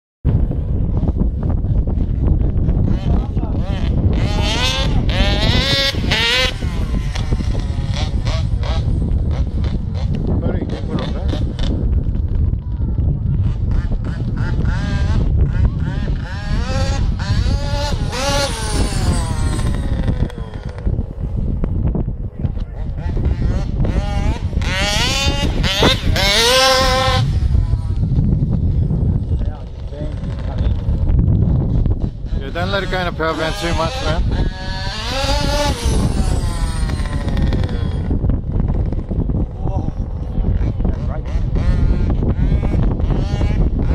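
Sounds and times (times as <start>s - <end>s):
wind rumble on microphone: 0.2s - 43.9s
two-stroke engine revving: 1.9s - 12.3s, 13.3s - 21.8s, 22.5s - 43.9s.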